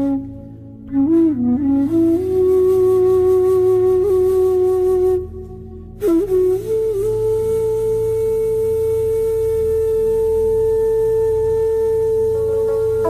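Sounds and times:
bansuri flute long note: 0:00.0 - 0:13.0
low drone: 0:12.0 - 0:13.0
plucked string notes: 0:12.4 - 0:13.0.

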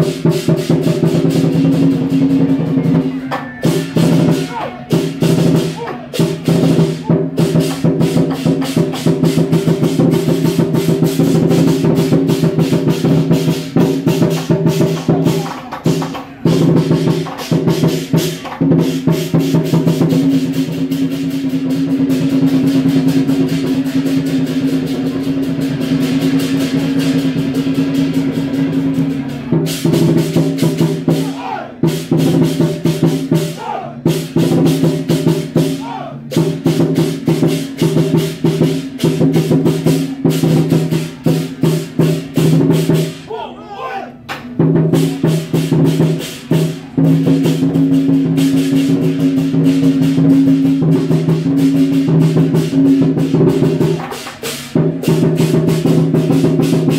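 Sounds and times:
cymbals clashing: 0:00.0 - 0:43.4, 0:44.4 - 0:56.9
drum beaten rapidly: 0:00.0 - 0:43.6, 0:44.2 - 0:56.9.

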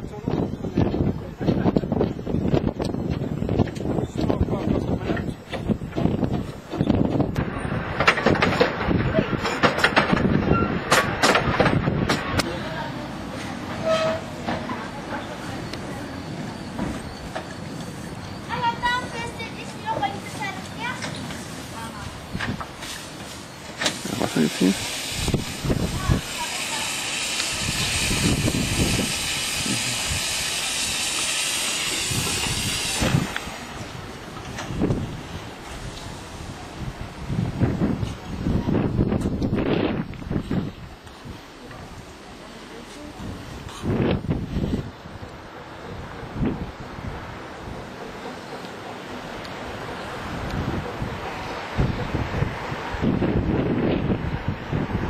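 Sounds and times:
train rumbling along: 0:00.0 - 0:55.0
wheels clicking and clanking on track: 0:00.1 - 0:53.0
steam hissing: 0:12.6 - 0:38.2.

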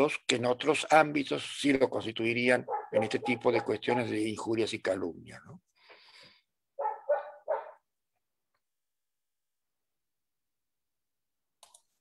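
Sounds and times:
dog barking: 0:02.6 - 0:04.2, 0:06.8 - 0:07.8.

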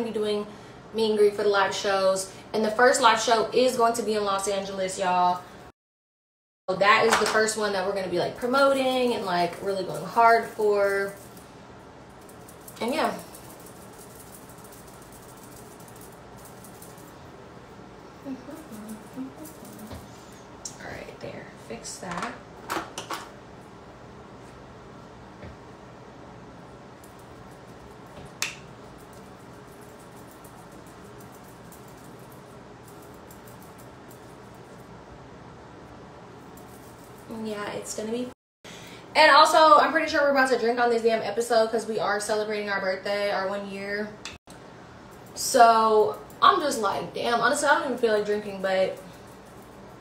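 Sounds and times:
low room hiss: 0:06.7 - 0:50.0
person saying yeah: 0:18.2 - 0:20.0.

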